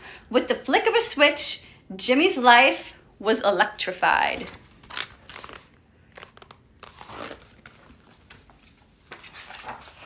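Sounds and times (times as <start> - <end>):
paper rustling and crinkling: 4.3 - 10.0.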